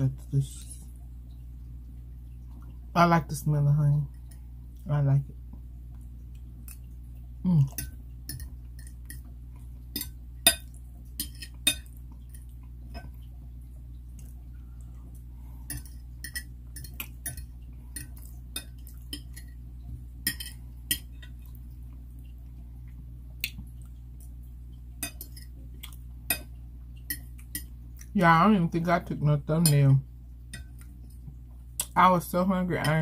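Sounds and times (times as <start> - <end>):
low hum: 0.0 - 33.0.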